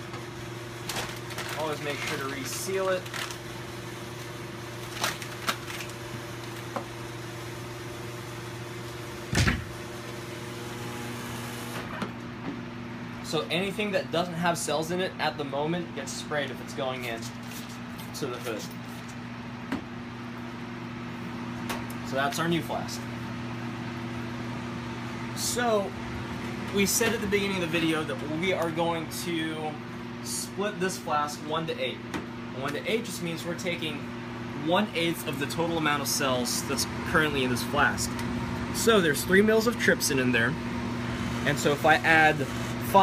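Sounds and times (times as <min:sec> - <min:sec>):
electrical hum of equipment: 0:00.0 - 0:43.0
cabinet door thump: 0:09.3 - 0:09.7.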